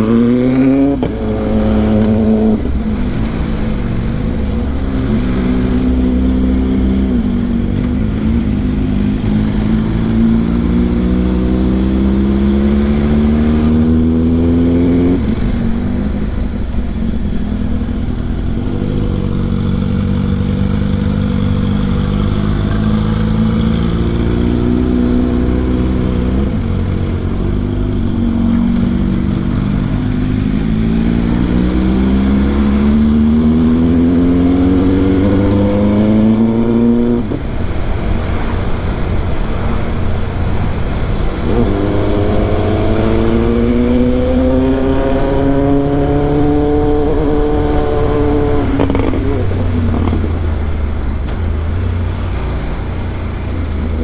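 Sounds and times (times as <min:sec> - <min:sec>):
motorcycle engine pulling uphill: 0:15.2 - 0:51.2.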